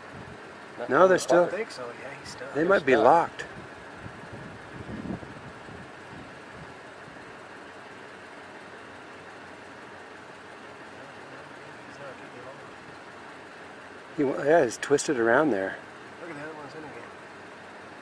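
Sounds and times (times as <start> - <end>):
steady background noise: 0.0 - 18.0.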